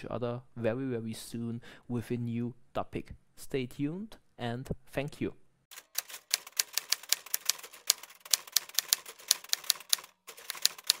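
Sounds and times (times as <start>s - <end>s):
typewriter key clicks: 6.0s - 11.0s.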